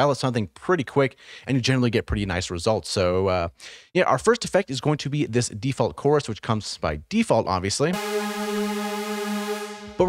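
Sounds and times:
held synthesizer note: 0:07.9 - 0:10.0.

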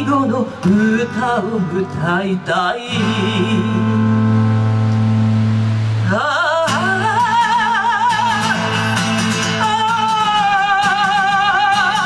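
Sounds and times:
person singing: 0:00.0 - 0:04.3, 0:06.0 - 0:12.0
acoustic guitar sustained low note: 0:00.0 - 0:12.0.

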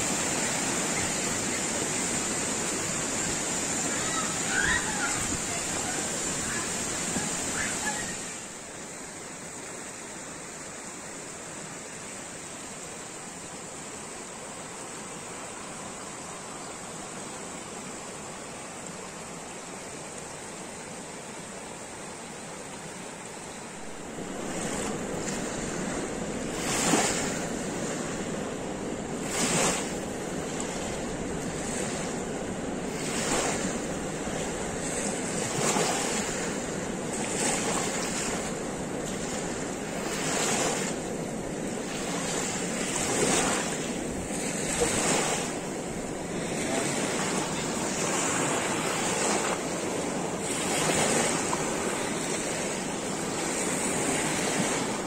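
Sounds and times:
wind on microphone: 0:00.0 - 0:08.6, 0:23.8 - 0:55.0
river current rushing: 0:00.0 - 0:55.0
small waves washing on sand: 0:00.0 - 0:55.0.

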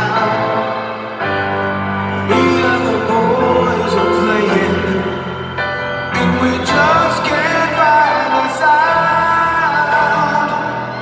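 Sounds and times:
person singing: 0:00.0 - 0:11.0
piano accompaniment: 0:00.0 - 0:11.0.

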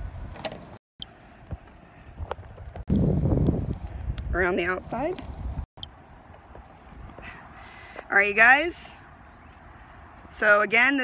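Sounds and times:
wind buffeting microphone: 0:01.4 - 0:10.3.

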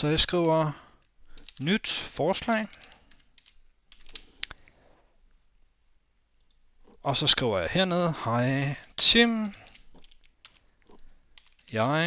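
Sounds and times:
typing on computer keyboard: 0:01.3 - 0:01.6, 0:02.7 - 0:04.3, 0:09.5 - 0:11.8.

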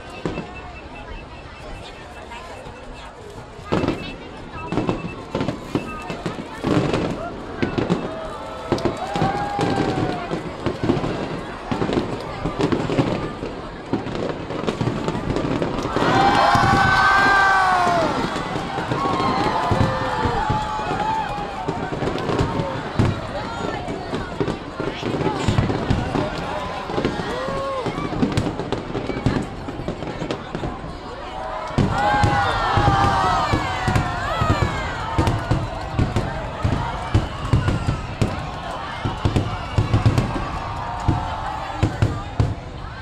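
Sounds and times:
fireworks bangs and crackles: 0:00.0 - 0:43.0
people's voices: 0:00.0 - 0:43.0.

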